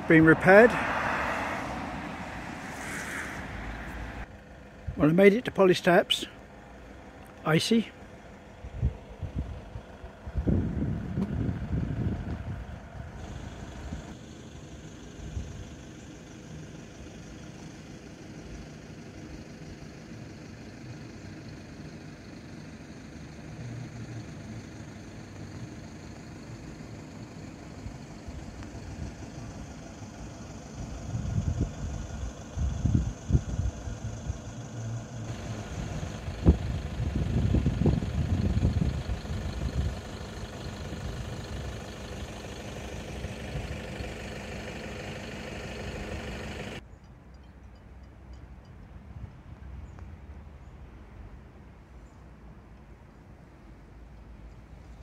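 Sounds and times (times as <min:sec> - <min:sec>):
wind buffeting microphone: 0:08.6 - 0:13.2, 0:30.9 - 0:34.5, 0:35.7 - 0:40.0.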